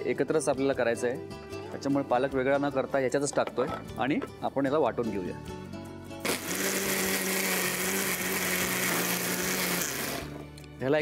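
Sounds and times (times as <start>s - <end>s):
mixer-grinder motor whirring: 6.2s - 10.4s.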